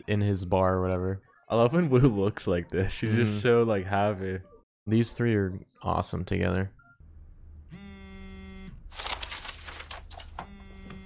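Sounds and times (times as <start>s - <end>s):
mobile phone buzzing: 7.7s - 8.8s, 10.4s - 11.0s.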